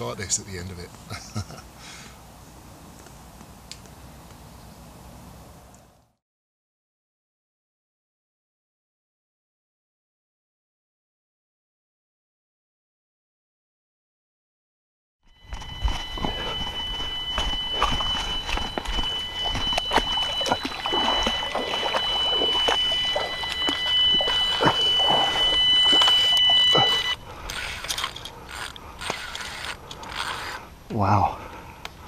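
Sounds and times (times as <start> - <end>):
bite alarm electronic tone: 15.3 - 27.8.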